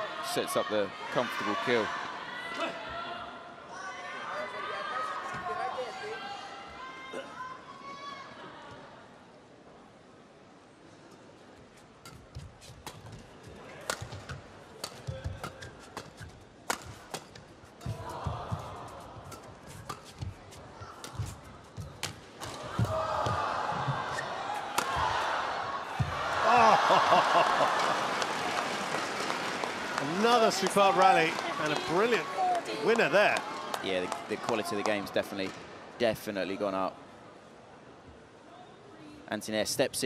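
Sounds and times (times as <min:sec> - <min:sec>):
crowd cheering and clapping: 0:22.6 - 0:35.0.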